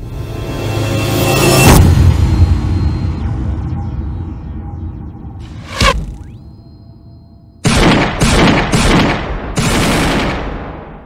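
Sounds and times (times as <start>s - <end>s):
bullet whooshing past: 5.4s - 6.4s.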